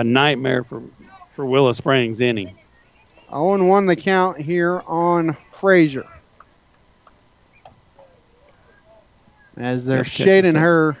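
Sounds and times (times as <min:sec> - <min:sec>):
faint distant voices: 0:00.0 - 0:10.9.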